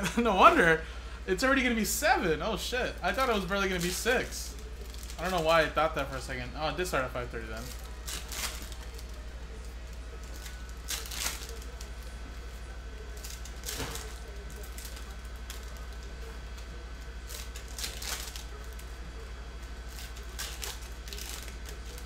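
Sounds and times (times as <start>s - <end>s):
steady low hum: 0.0s - 22.0s
foil wrappers crinkling and tearing: 2.8s - 22.0s.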